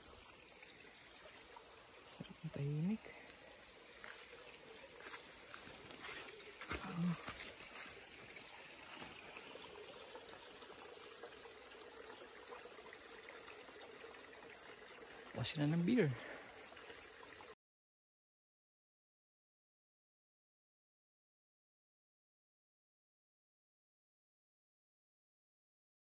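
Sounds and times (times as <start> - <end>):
creek trickling: 0.0 - 17.6.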